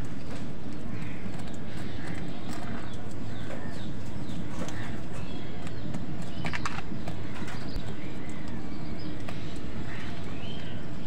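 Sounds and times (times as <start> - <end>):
beaks pecking in a plastic bowl: 0.0 - 10.8
low background rumble: 0.0 - 11.0.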